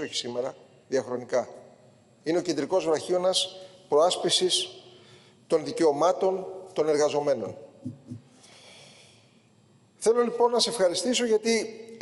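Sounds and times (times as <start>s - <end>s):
man breathing in: 4.9s - 5.5s, 8.3s - 9.4s.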